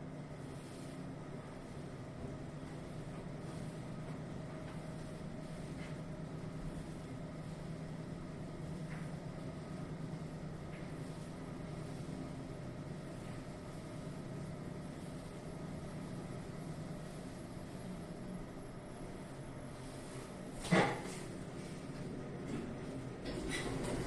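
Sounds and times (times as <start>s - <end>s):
elevator hum: 0.0s - 24.0s
elevator clunk: 22.4s - 24.0s.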